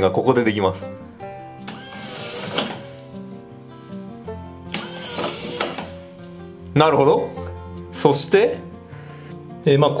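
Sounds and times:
background music: 0:00.0 - 0:10.0
smart lock motor whirring: 0:01.6 - 0:03.2, 0:04.7 - 0:06.2.

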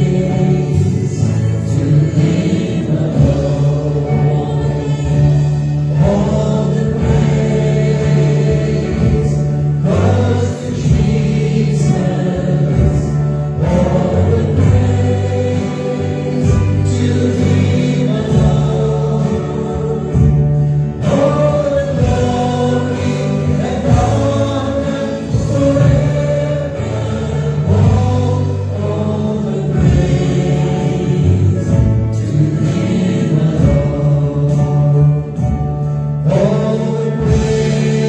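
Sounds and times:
band playing: 0:00.0 - 0:38.0
held bass line: 0:00.0 - 0:38.0
voices singing together: 0:00.0 - 0:38.0.

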